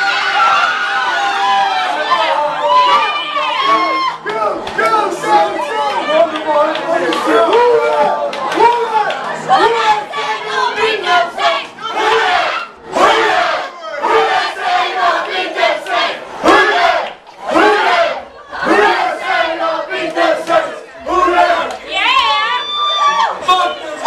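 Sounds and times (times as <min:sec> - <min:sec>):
crowd of fans shouting: 0:00.0 - 0:24.0.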